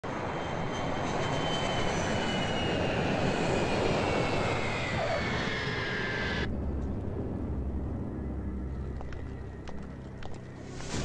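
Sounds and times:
jet airliner flying overhead: 0.0 - 11.0.

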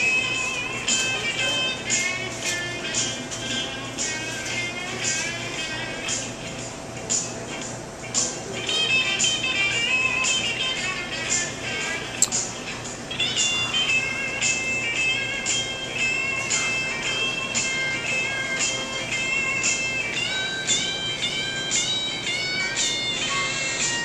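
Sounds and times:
music with steady beat: 0.0 - 24.0
sharp click: 12.2 - 12.4.

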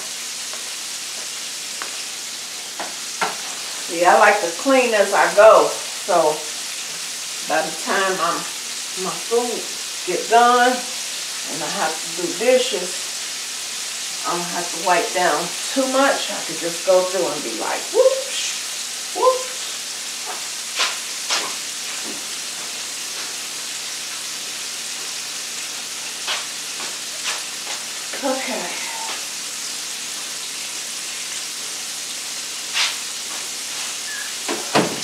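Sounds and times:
food sizzling in a skillet: 0.0 - 35.0.

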